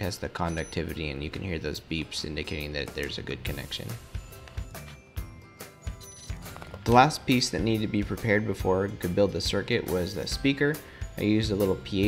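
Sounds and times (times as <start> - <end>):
background music: 0.0 - 12.0
multimeter short beeps: 0.5 - 1.0, 5.9 - 6.6.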